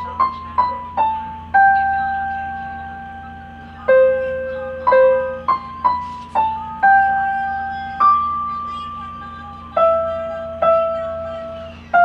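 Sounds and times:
electronic keyboard piano notes: 0.0 - 12.0
faint steady low hum: 0.0 - 12.0.

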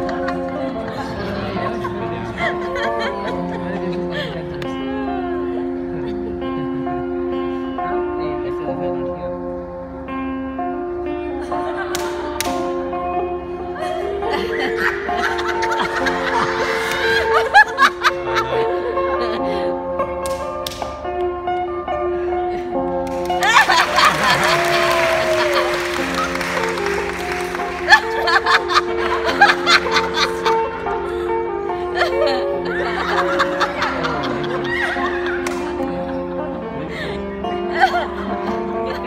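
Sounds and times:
women laughing: 0.0 - 6.8, 11.2 - 12.2, 13.7 - 19.9, 23.4 - 26.6, 27.7 - 39.0
instrumental stage music: 0.0 - 39.0.

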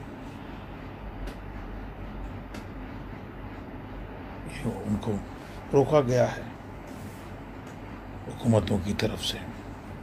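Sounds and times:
low background rumble and hiss: 0.0 - 10.0.

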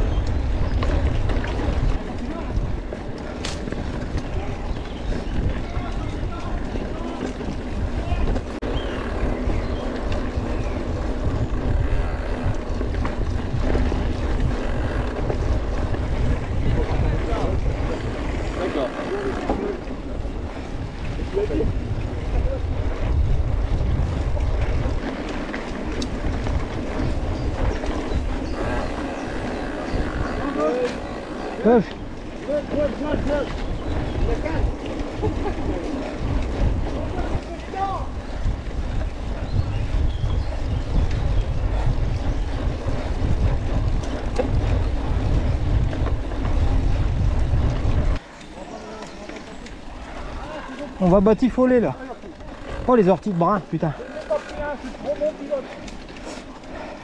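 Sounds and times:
tyres rolling over dirt trail: 0.0 - 57.0
wind buffeting microphone: 0.0 - 57.0.

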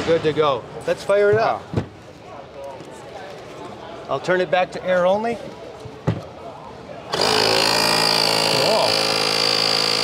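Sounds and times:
air compressor whining: 7.1 - 10.0.

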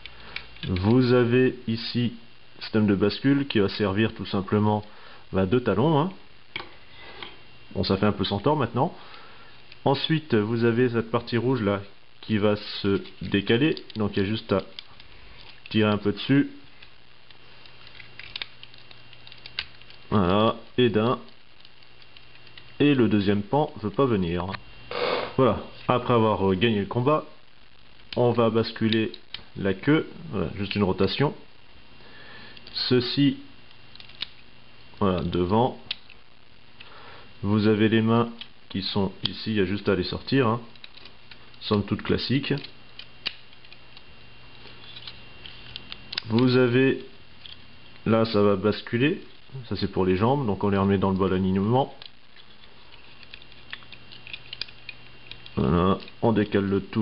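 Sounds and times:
plastic toy parts clicking: 0.0 - 0.9, 17.6 - 20.0, 33.9 - 34.4, 42.5 - 44.1, 52.0 - 56.6
steady low hum: 0.0 - 57.0.

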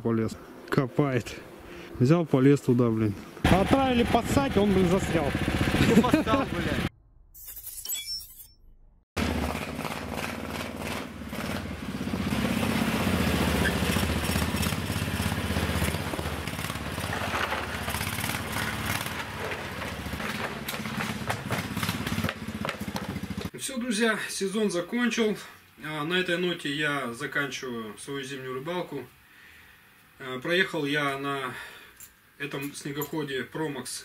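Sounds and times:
snowmobile engine running: 3.5 - 6.9, 9.2 - 23.5.

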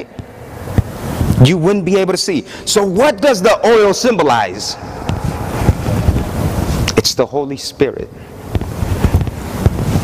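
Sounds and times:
rustling on clip-on microphone: 5.0 - 7.1, 8.2 - 10.0.

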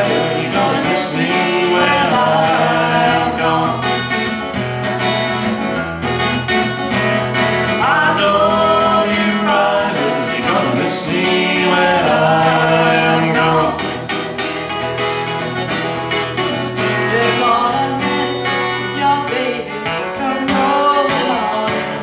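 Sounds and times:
woman singing: 0.0 - 3.8, 7.8 - 13.4, 17.1 - 22.0
acoustic guitar: 0.0 - 22.0.

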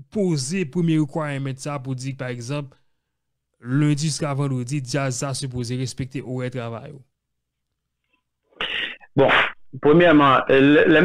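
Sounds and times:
man's sneeze-like breath burst: 8.6 - 9.6.

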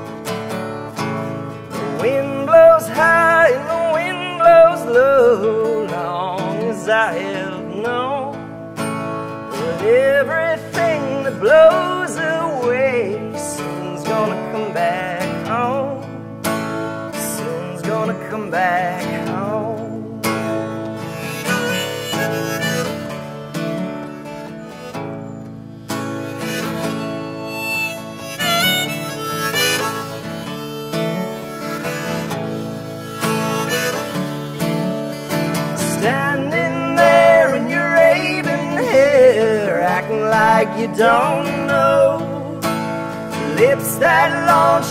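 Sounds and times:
strummed acoustic guitar: 0.0 - 44.9
harmonica solo: 19.8 - 44.9.

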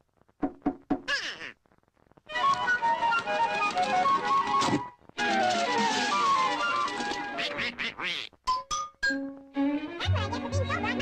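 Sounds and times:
cartoon duck voice quacking: 1.1 - 1.6, 7.4 - 8.4.

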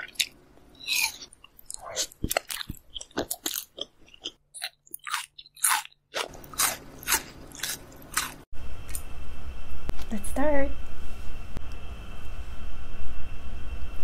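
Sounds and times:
crunchy bites and chewing: 0.0 - 9.0.

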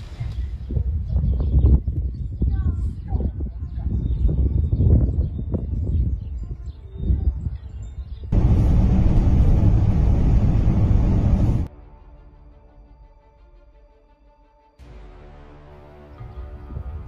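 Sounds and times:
strong wind buffeting microphone: 0.0 - 11.7.

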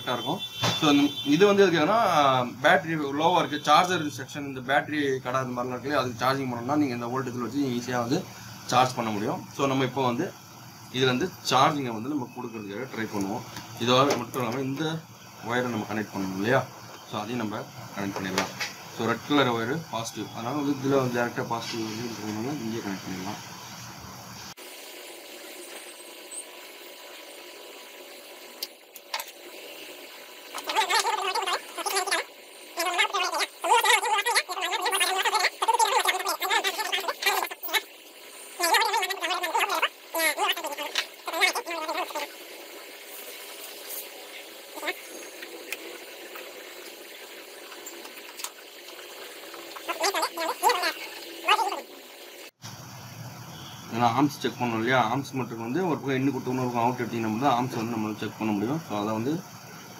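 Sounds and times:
person speaking: 30.6 - 37.8, 38.6 - 42.3, 44.8 - 45.0, 49.9 - 51.8.

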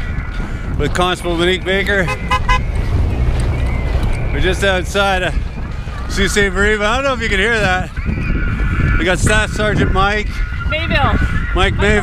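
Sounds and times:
traffic rumbling: 0.0 - 12.0
vehicle horn toots: 2.0 - 2.8.

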